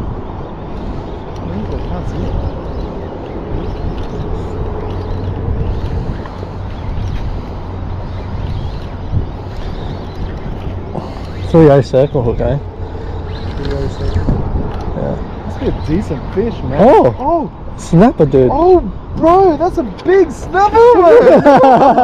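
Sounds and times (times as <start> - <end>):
rumbling outdoor background noise: 0.0 - 22.0.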